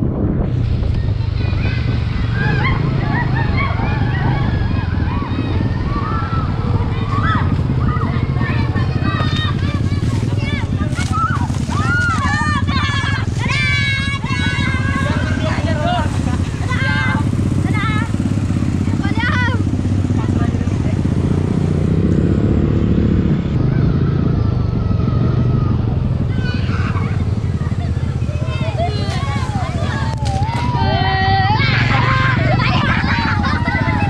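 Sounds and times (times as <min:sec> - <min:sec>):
motorcycle engine rumbling: 0:00.0 - 0:34.0
voices calling out: 0:00.0 - 0:34.0.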